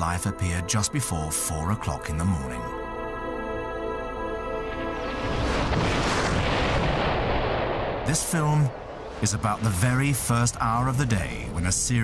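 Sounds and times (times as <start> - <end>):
music: 0.0 - 12.0
steady rumbling blast of noise: 4.8 - 12.0.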